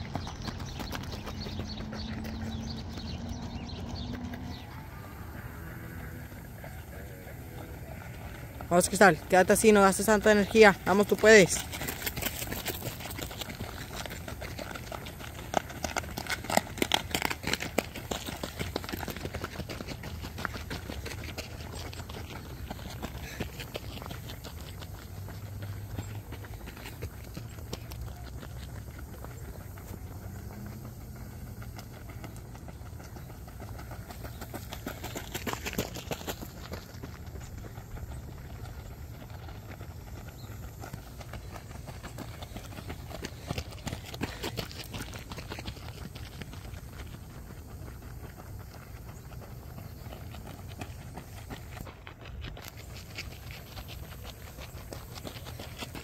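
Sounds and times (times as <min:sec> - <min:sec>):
footsteps crunching on gravel: 0:00.0 - 0:56.0.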